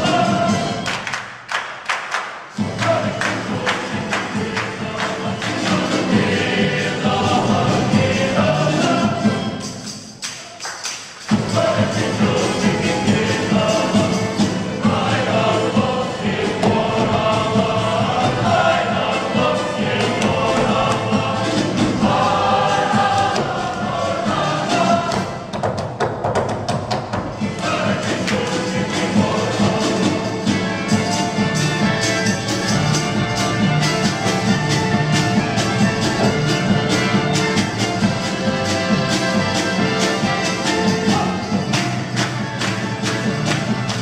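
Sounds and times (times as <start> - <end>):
choir singing: 0.0 - 1.2, 2.5 - 10.6, 11.3 - 25.6, 27.2 - 44.0
hands clapping rhythm: 0.0 - 7.8, 9.7 - 14.4, 19.5 - 30.4, 39.0 - 44.0
instrumental accompaniment: 2.4 - 44.0
folk band playing: 2.6 - 25.5, 27.2 - 44.0.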